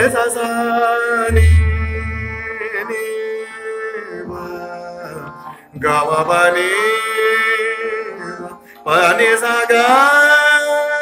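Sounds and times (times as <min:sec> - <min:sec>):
man singing classical vocal: 0:00.0 - 0:11.0
steady drone: 0:01.3 - 0:02.7.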